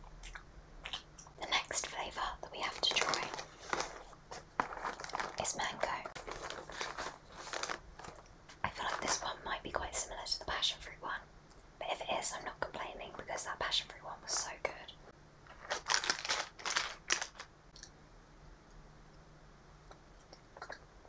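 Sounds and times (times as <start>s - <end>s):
woman whispering: 1.3s - 3.5s, 5.3s - 6.2s, 8.6s - 15.1s.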